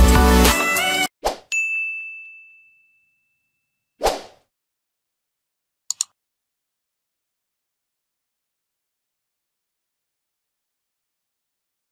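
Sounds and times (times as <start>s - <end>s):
background music: 0.0s - 1.1s
high chime ding: 1.5s - 3.8s.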